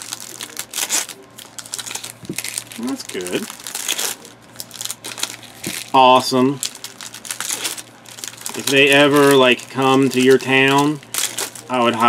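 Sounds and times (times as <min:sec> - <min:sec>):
cards rustling: 0:00.0 - 0:12.0
wrappers crinkling: 0:00.0 - 0:12.0.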